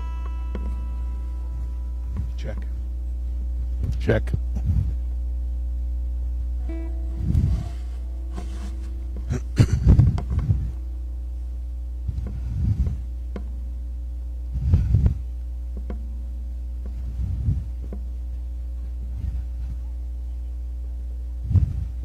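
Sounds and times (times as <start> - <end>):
low rumbling thumps: 0.0 - 19.8, 21.3 - 22.0
low electrical hum: 0.0 - 22.0.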